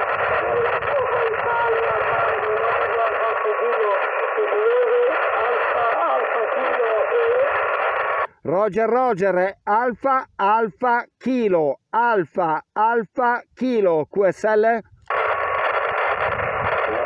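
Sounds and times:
radio band hiss: 0.0s - 17.0s
weak radio voice: 0.0s - 17.0s.

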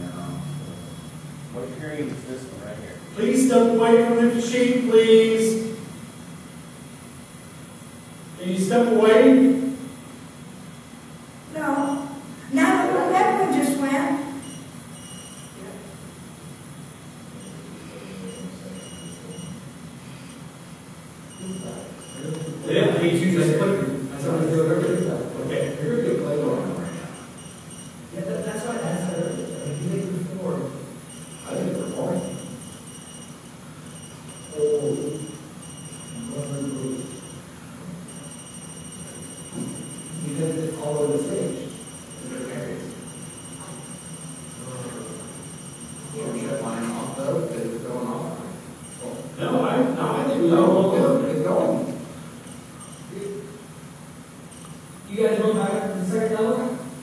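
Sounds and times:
high electronic alarm tone: 0.0s - 1.5s, 11.6s - 15.6s, 17.4s - 19.6s, 21.3s - 48.2s, 48.8s - 50.8s, 52.4s - 53.4s
steady background hiss: 0.0s - 57.0s.

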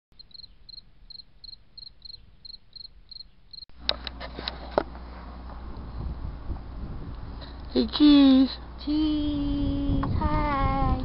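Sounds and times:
cricket chirping: 0.2s - 3.7s.

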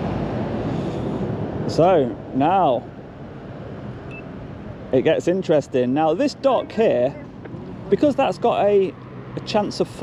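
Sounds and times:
low outdoor background noise: 0.0s - 10.0s
faint high beep: 4.1s - 4.3s.

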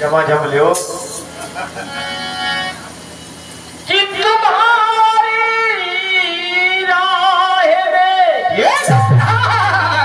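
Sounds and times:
harmonium chord: 0.0s - 7.6s
person singing: 3.9s - 10.0s.

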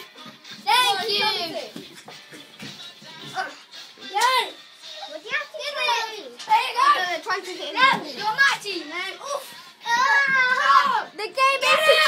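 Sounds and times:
children shouting and squealing: 3.2s - 12.0s.

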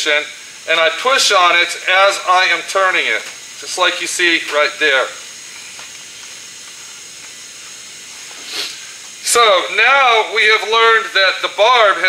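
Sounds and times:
low room noise hiss: 0.0s - 12.0s.

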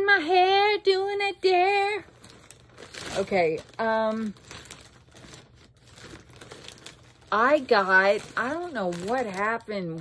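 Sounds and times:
plastic bag crinkling: 1.6s - 10.0s.

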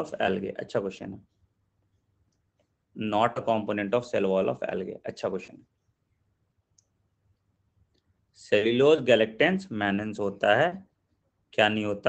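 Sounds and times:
man speaking: 0.0s - 1.3s, 3.0s - 5.6s, 8.4s - 10.9s, 11.5s - 12.0s.

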